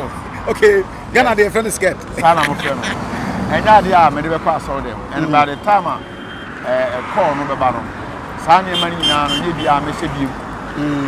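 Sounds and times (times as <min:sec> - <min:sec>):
man speaking: 0:00.0 - 0:06.0, 0:06.6 - 0:11.0
roadside traffic hum: 0:00.0 - 0:11.0.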